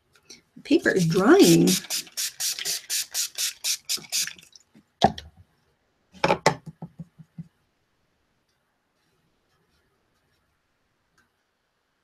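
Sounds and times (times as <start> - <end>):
spray bottle spritzes: 1.0 - 4.4.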